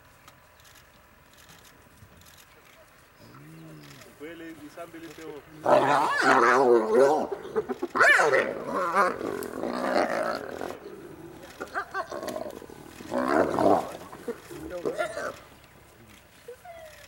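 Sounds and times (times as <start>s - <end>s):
hyenas calling: 5.5s - 15.8s.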